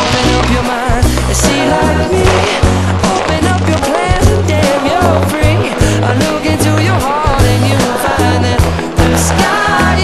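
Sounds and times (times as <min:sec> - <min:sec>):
instrumental background music: 0:00.0 - 0:10.0.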